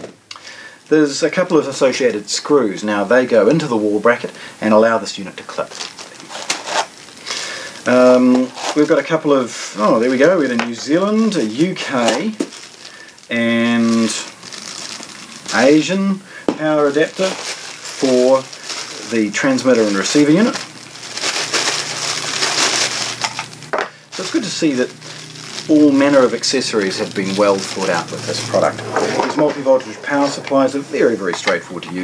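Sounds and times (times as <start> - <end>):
plastic packaging crinkling: 2.9 - 32.0.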